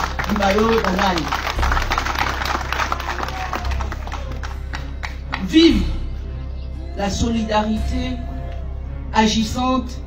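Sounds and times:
audience clapping: 0:00.0 - 0:05.5
faint music with low pulse: 0:00.0 - 0:10.0.

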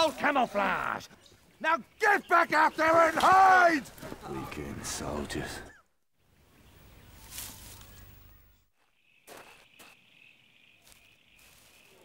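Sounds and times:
rustling: 0:07.2 - 0:08.3
crickets chirping: 0:07.6 - 0:12.0.

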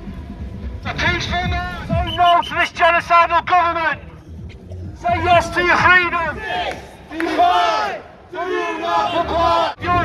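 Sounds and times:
man shouting through a megaphone: 0:00.9 - 0:04.0, 0:05.0 - 0:10.0
crowd noise: 0:01.0 - 0:10.0.

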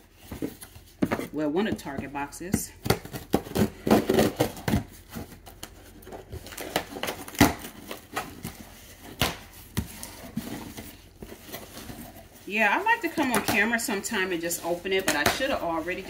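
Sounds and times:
cardboard scraping and crinkling: 0:03.0 - 0:16.0.

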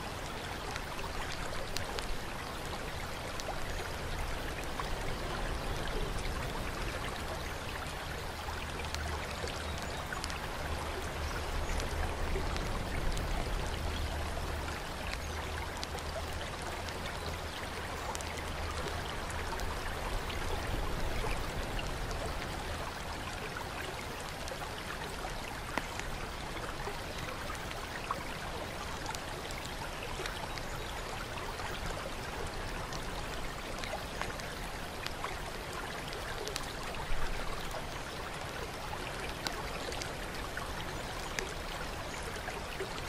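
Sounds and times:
water drips: 0:00.0 - 0:43.0.

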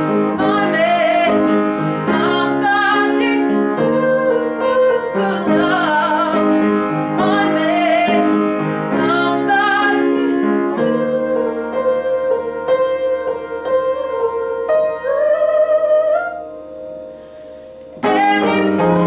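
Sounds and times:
woman singing: 0:00.0 - 0:16.6, 0:18.0 - 0:19.0
piano chords: 0:00.0 - 0:19.0.

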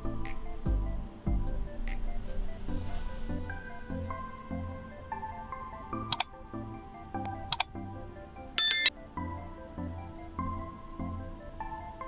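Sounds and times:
soft background music: 0:00.0 - 0:12.0
bright bell-like chime: 0:08.6 - 0:08.9
sharp mouse clicks: 0:08.6 - 0:08.9.

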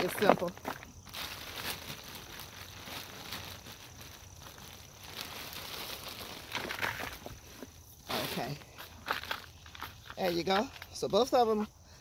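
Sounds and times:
hands handling plastic pot and soil: 0:00.0 - 0:11.8.

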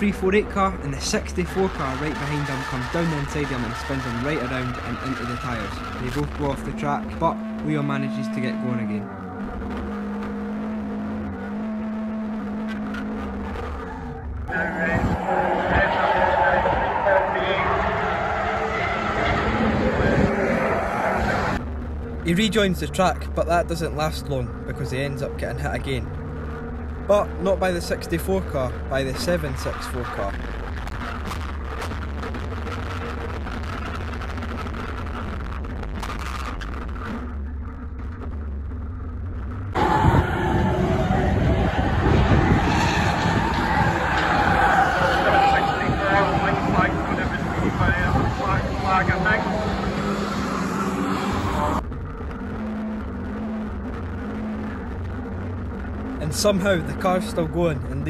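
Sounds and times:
racing car engines: 0:00.0 - 0:58.0.

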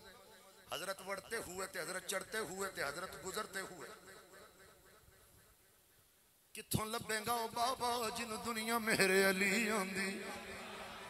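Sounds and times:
speech echo: 0:00.0 - 0:05.2, 0:06.5 - 0:11.0.

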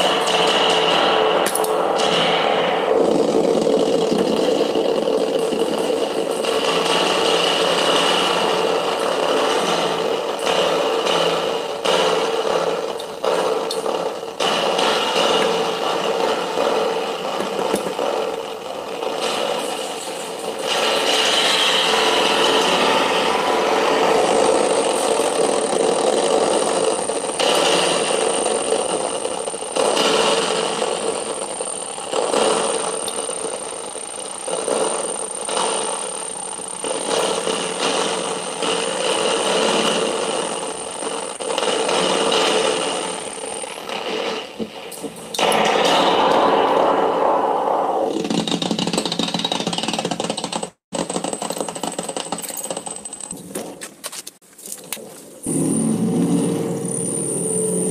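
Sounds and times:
crackling rattling noise: 0:00.0 - 0:57.9
harsh dense noise drone: 0:55.4 - 0:57.9
thin high whine: 0:55.5 - 0:57.9.

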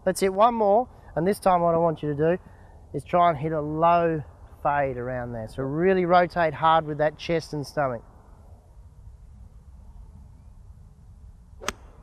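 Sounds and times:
faint low rumble: 0:00.0 - 0:12.0
golf club striking ball: 0:11.6 - 0:12.0.

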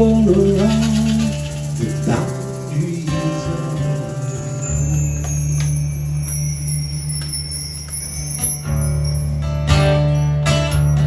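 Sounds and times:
bar chimes shimmering: 0:01.4 - 0:11.0.

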